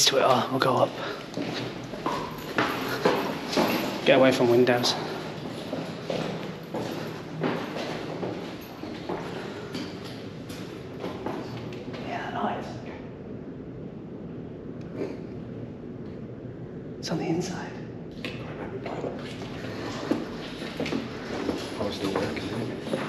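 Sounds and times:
footsteps on hard floor: 1.2s - 11.9s, 19.0s - 23.0s.

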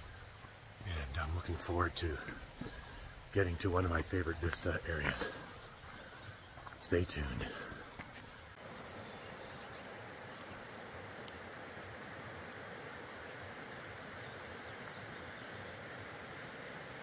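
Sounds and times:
small birds chirping: 0.0s - 11.4s, 13.0s - 16.4s
rushing mountain stream: 9.6s - 17.0s.

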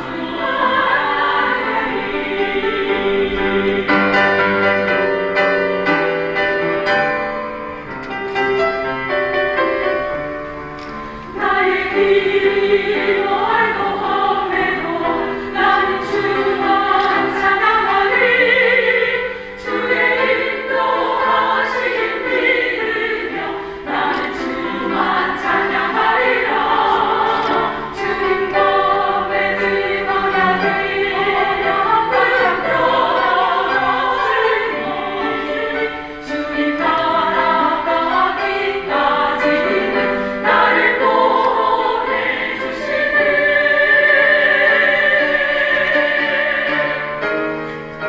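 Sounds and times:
women singing a hymn: 0.0s - 4.7s, 11.2s - 47.5s.

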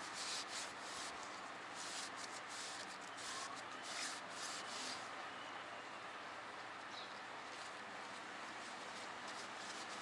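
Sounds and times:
cloth rag rubbing metal: 0.0s - 5.1s, 8.6s - 10.0s.

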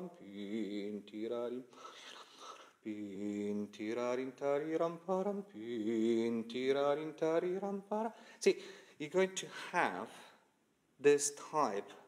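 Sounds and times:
man singing wordless syllables: 0.0s - 10.4s, 11.0s - 12.0s.

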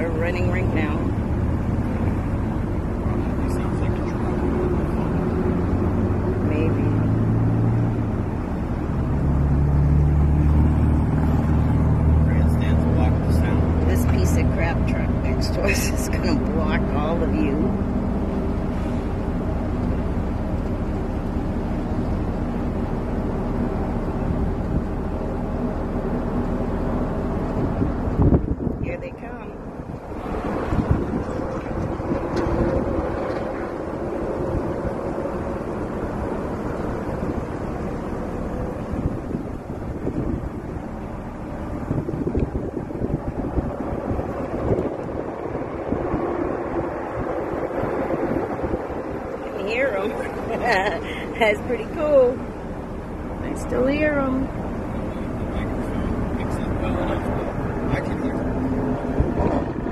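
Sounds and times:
distant race cars droning: 0.0s - 59.9s
idling traffic: 0.0s - 59.9s
wind buffeting microphone: 0.0s - 59.9s.

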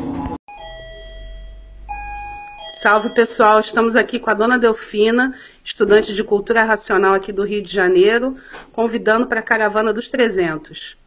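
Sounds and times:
chime ringing: 0.5s - 4.1s.

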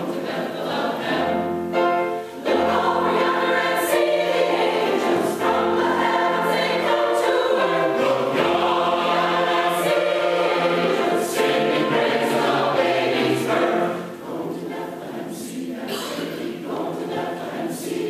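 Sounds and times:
mixed choir singing in harmony: 0.0s - 18.0s.

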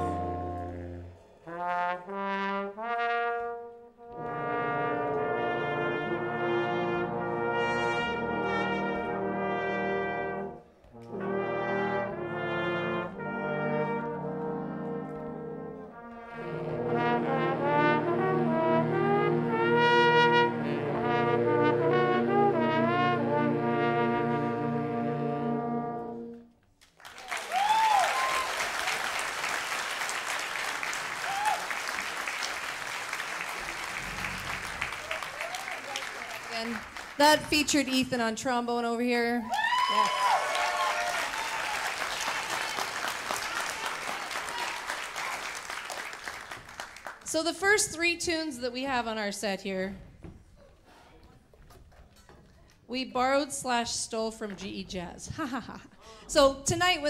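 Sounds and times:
big band brass chords: 0.0s - 26.4s, 32.0s - 35.7s
audience applause: 26.8s - 37.9s, 39.5s - 47.3s.

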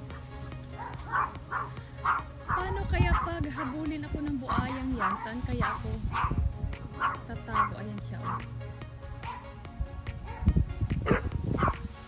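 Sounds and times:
background music: 0.0s - 12.0s
dog barking: 0.8s - 3.8s, 4.5s - 6.4s, 7.0s - 8.5s, 9.2s - 9.5s, 10.2s - 11.9s.

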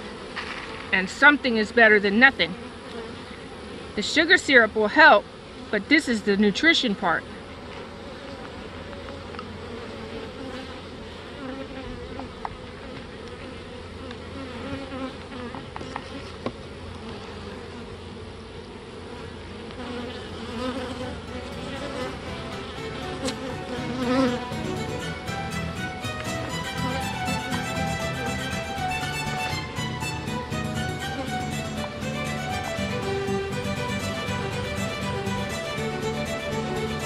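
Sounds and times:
honeybees buzzing: 0.0s - 37.0s
violin music: 21.1s - 37.0s.

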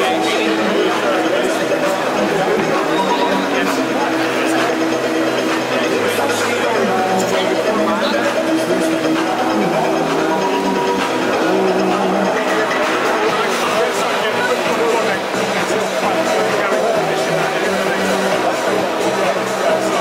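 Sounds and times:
loud music: 0.0s - 20.0s
voices: 0.0s - 20.0s.

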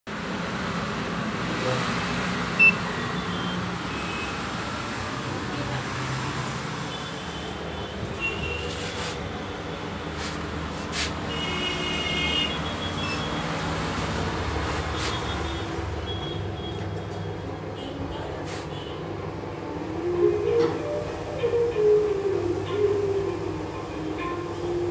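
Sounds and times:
high electronic beeps: 2.6s - 4.3s
elevator low hum: 12.5s - 24.9s.

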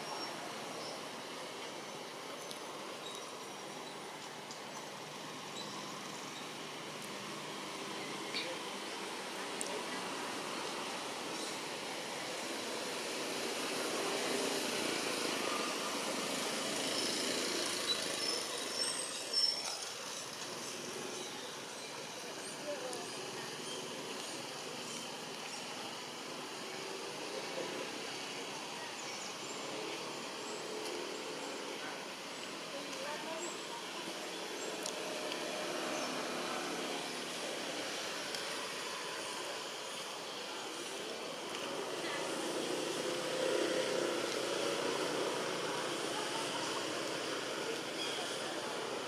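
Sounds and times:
distant murmuring voices: 0.0s - 49.0s.

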